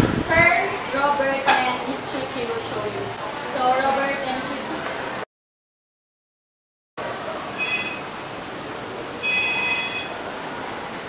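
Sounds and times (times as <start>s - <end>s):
room noise hiss: 7.0s - 11.0s
electronic phone ring: 7.6s - 8.1s, 9.2s - 10.2s.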